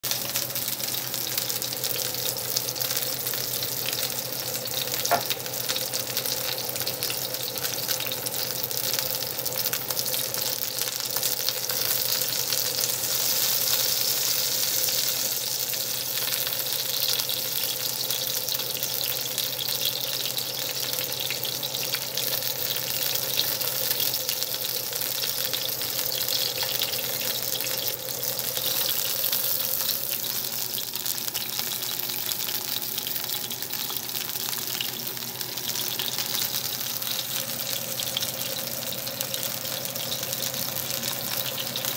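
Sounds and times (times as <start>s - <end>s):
steak sizzling in butter: 0.0s - 41.9s.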